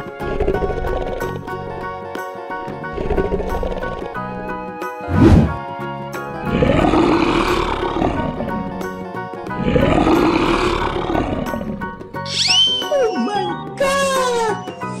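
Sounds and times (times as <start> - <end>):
big cat roar: 0.0 - 1.4, 6.4 - 8.9, 9.5 - 12.0
cartoon background music: 0.0 - 15.0.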